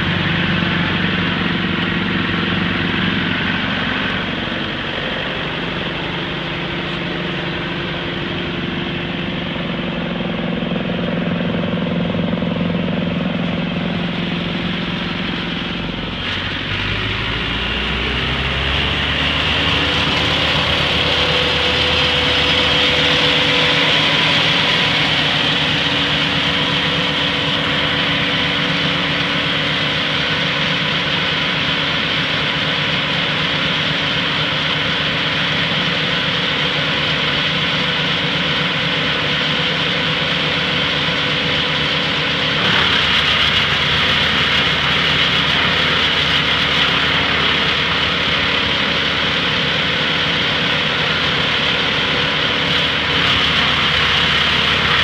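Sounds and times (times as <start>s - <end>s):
wood chipper running: 0.0s - 55.0s
wood chips blowing out: 41.7s - 55.0s.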